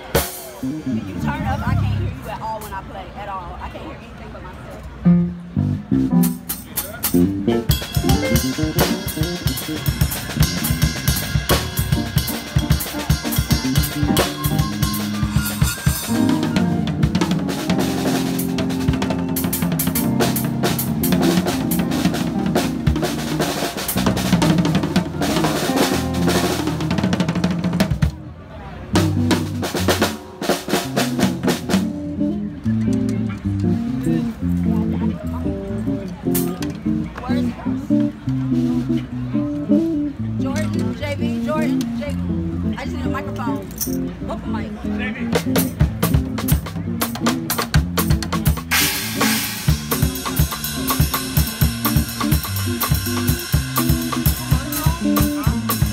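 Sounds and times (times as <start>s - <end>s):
drum kit playing: 0.0s - 2.8s, 5.1s - 28.2s, 29.0s - 44.6s, 45.2s - 55.9s
bass guitar low notes: 0.6s - 2.4s, 5.0s - 28.2s, 28.9s - 55.9s.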